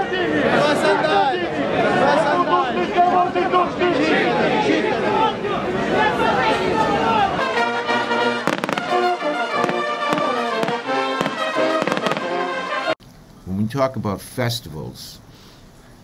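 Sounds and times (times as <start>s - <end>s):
crowd voices: 0.0s - 12.4s
music playing: 6.5s - 13.0s
firecracker bangs: 8.4s - 12.4s.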